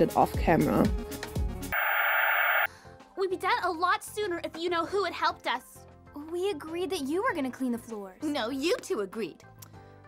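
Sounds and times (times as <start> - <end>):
background music: 0.0 - 1.7, 2.7 - 10.0
television static noise: 1.8 - 2.7
thin high whine: 1.8 - 2.7.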